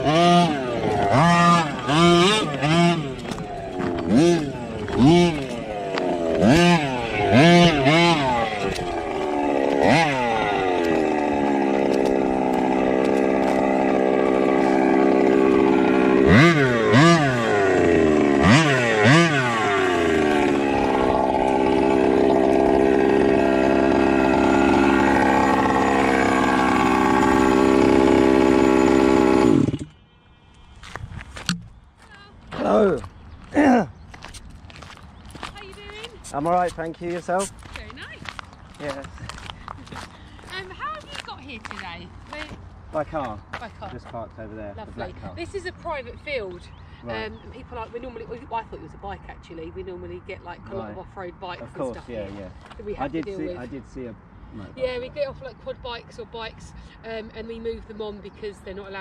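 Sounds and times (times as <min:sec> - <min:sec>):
model truck engine revving: 0:00.0 - 0:30.0.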